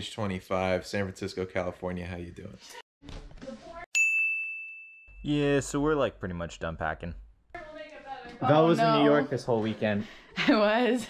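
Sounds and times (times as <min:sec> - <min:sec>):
bright chime ding: 0:04.0 - 0:05.3.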